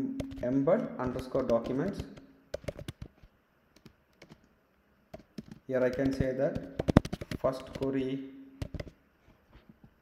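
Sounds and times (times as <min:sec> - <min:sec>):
keyboard keystrokes: 0:00.2 - 0:03.2, 0:03.8 - 0:04.5, 0:05.1 - 0:08.0, 0:08.6 - 0:09.0.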